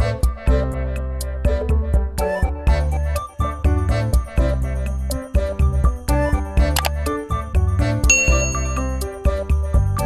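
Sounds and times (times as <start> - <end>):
background music with steady beat: 0.0 - 10.0
bell ding: 8.1 - 9.3.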